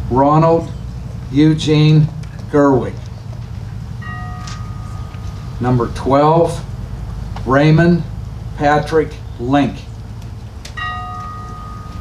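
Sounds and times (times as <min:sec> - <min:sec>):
bell ringing: 0:04.0 - 0:05.9, 0:10.8 - 0:12.0.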